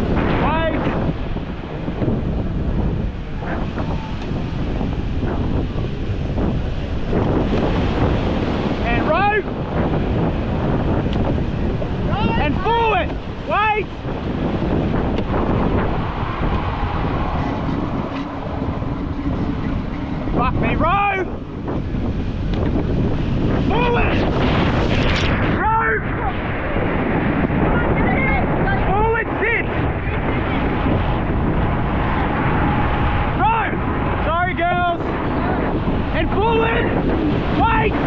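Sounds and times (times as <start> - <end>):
surf breaking and rushing: 0.0 - 38.0
wave washing over camera: 0.0 - 38.0
wind buffeting microphone: 0.0 - 38.0.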